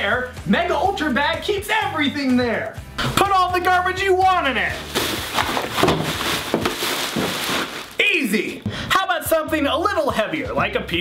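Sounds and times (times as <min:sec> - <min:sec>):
plastic bag crinkling: 0:04.7 - 0:08.7
falling trash knocks: 0:04.9 - 0:08.0.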